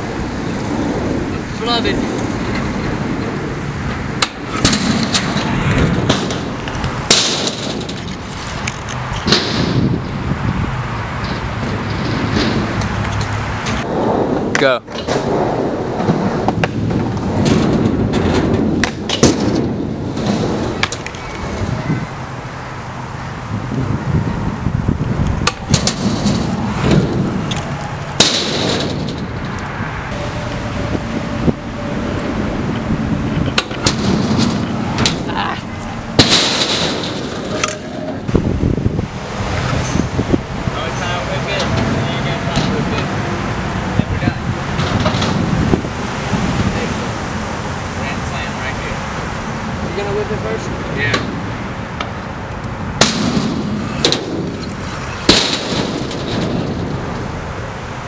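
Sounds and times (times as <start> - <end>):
scooter wheels rolling on concrete: 0.0 - 58.0
scooter clacking on concrete: 33.3 - 38.2.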